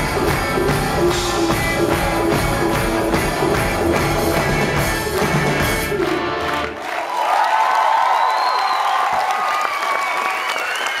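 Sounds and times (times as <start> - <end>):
live rock band playing: 0.0 - 6.8
audience cheering and applauding: 0.0 - 11.0.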